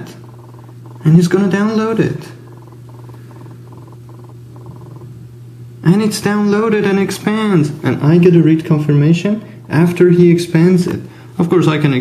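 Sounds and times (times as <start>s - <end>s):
mobile phone interference buzzing: 0.0s - 11.3s
low electrical hum: 0.0s - 12.0s.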